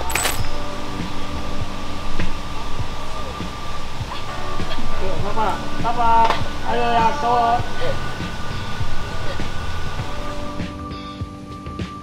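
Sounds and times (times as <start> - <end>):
steady hum: 0.0 - 11.0
sustained tones: 0.0 - 11.0.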